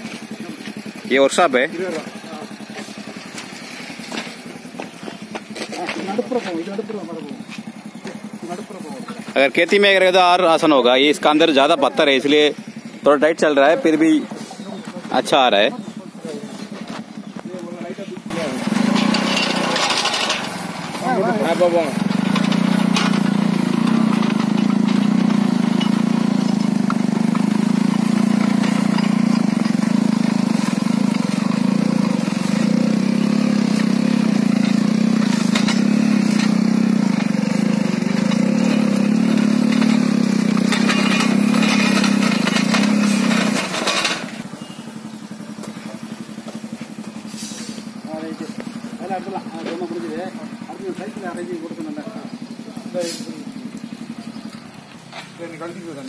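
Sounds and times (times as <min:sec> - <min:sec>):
motorcycle engine under load: 0:00.0 - 0:56.0
rotary tiller in stony soil: 0:18.1 - 0:44.8.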